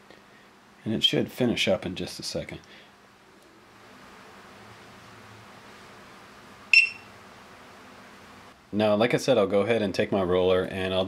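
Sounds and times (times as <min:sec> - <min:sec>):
faint steady hiss: 0:00.0 - 0:11.0
charger beep: 0:06.7 - 0:07.1.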